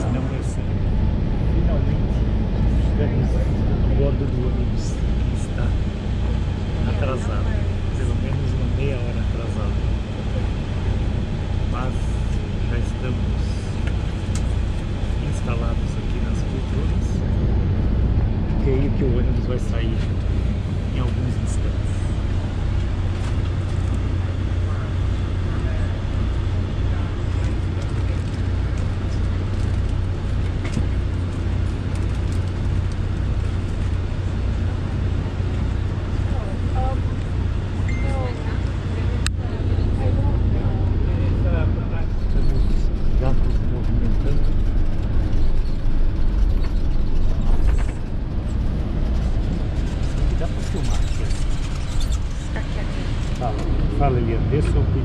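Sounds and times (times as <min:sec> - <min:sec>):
bus diesel engine idling: 0:00.0 - 0:55.0
passengers talking faintly: 0:14.8 - 0:17.4, 0:24.1 - 0:30.8, 0:35.2 - 0:44.8, 0:50.0 - 0:55.0.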